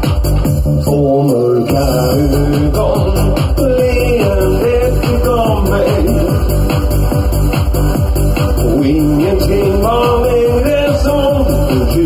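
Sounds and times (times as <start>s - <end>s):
dance band backing track: 0.0s - 12.0s
man singing into microphone: 0.8s - 6.5s, 8.6s - 12.0s.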